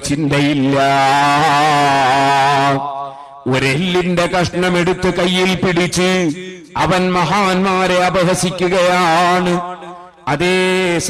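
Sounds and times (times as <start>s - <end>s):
man chanting a long note: 0.0s - 6.4s.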